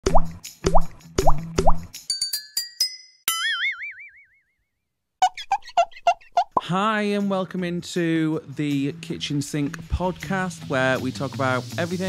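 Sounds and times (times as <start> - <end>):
cartoon water-drop plops: 0.0 - 1.9.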